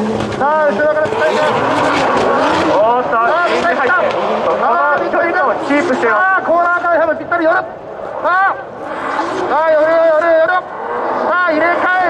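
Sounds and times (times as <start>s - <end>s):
tyres sliding: 0.0s - 6.9s
car engines at high revs: 0.0s - 12.0s.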